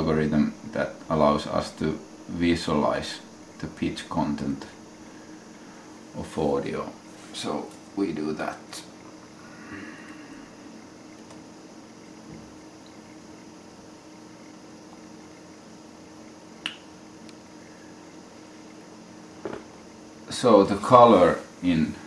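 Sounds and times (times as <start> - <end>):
steady low hum: 0.0 - 22.0
sharp click: 16.6 - 17.4.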